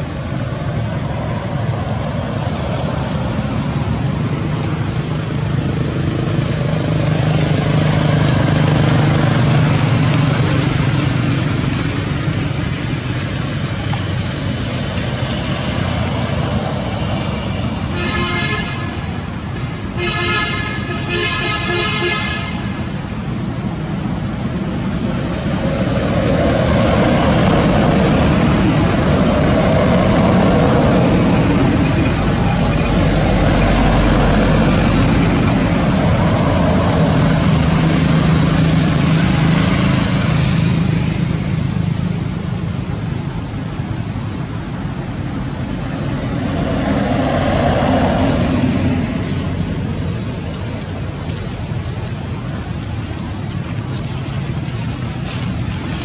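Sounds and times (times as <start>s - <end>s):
road traffic rumble: 0.0s - 56.0s.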